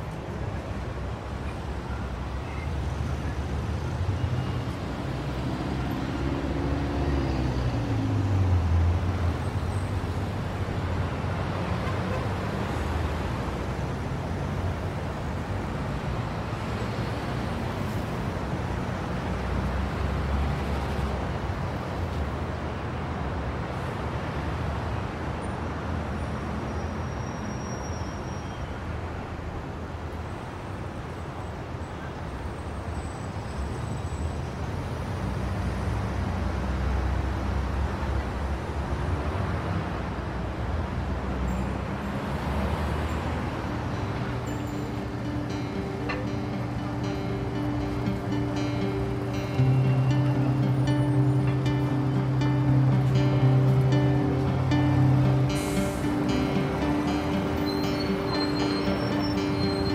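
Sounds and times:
passing cars: 0.0 - 27.8, 28.8 - 59.9.

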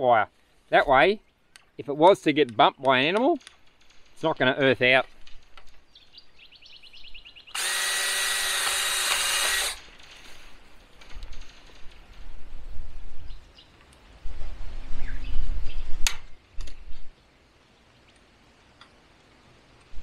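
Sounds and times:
cordless drill boring plastic pipe: 7.6 - 9.8.

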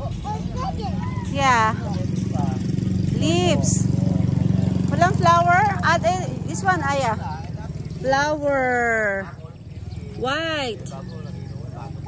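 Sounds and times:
toddler high-pitched vocal sounds: 0.0 - 1.4
motorcycle engine idling: 0.0 - 12.0.

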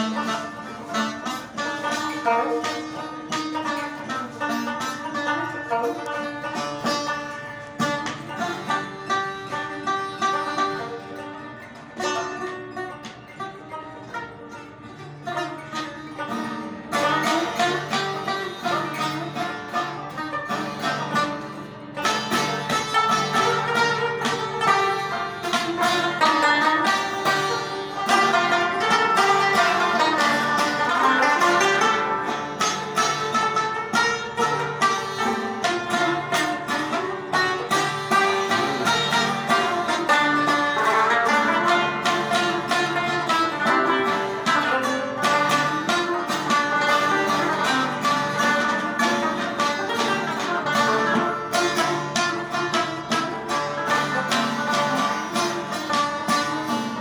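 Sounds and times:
plucked lutes playing: 0.0 - 57.0.

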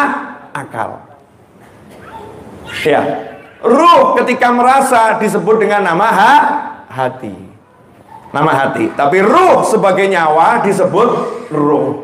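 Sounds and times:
man lecturing over microphone: 0.0 - 1.3, 2.8 - 7.7, 8.3 - 12.0.

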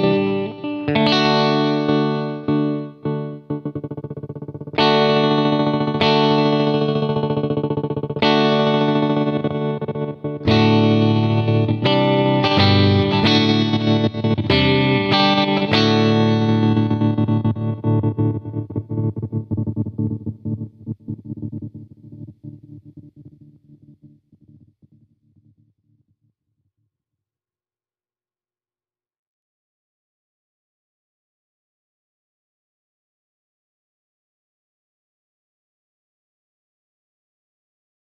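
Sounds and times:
electric guitar chords with tremolo: 0.0 - 24.8.

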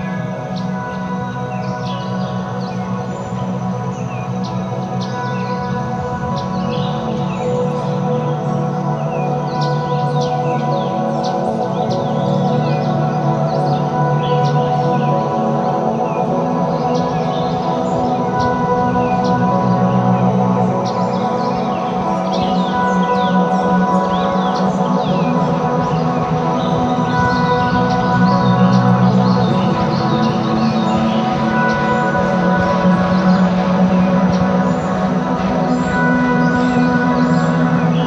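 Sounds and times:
ambient drone music: 0.0 - 38.0.

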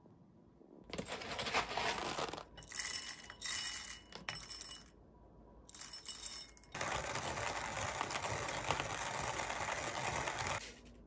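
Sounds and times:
hand-cranked coffee grinder grinding: 6.8 - 10.6.

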